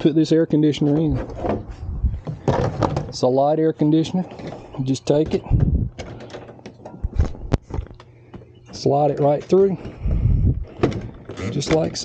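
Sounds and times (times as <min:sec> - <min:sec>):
clatter of knocks: 0:02.2 - 0:03.2.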